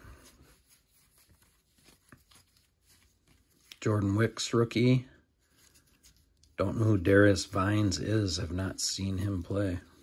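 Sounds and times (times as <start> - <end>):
trading cards flipped by hand: 0.7 - 4.2.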